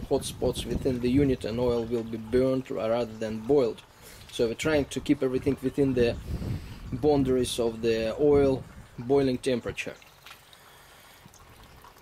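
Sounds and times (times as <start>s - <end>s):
liquid trickling into funnel: 0.0s - 12.0s
faint drips: 0.1s - 12.0s.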